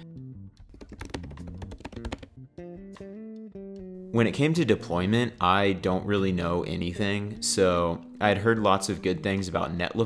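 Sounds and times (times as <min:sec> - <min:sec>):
plucked background music: 0:00.0 - 0:10.0
keyboard typing: 0:00.6 - 0:02.4.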